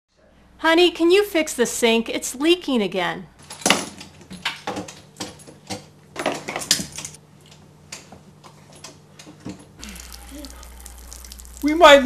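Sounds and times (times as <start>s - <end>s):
low hum with hiss: 5.4s - 12.0s.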